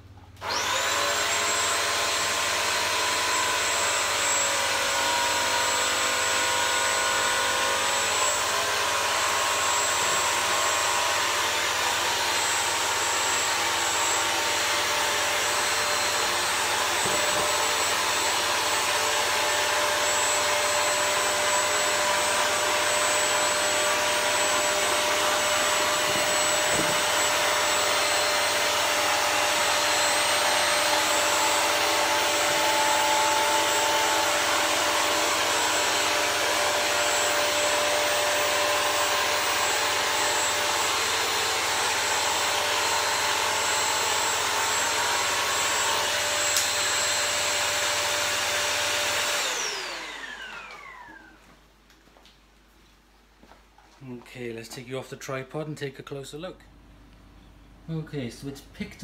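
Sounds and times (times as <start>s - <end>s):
floor cleaner running on carpet: 0.4s - 51.5s.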